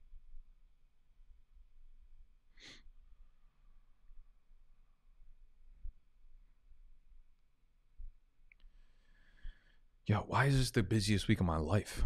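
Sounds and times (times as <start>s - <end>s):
person breathing: 2.6s - 2.9s, 8.7s - 10.0s.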